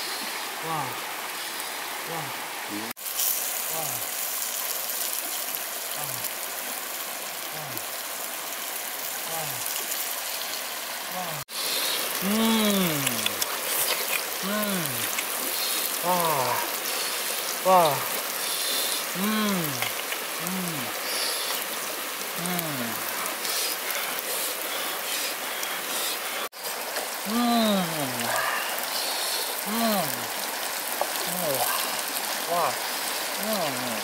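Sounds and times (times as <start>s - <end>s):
steady hiss: 0.0s - 34.0s
man saying wow: 2.1s - 2.9s, 16.0s - 16.8s, 17.6s - 18.2s, 27.3s - 28.8s, 29.7s - 30.3s, 31.2s - 32.8s, 33.4s - 34.0s.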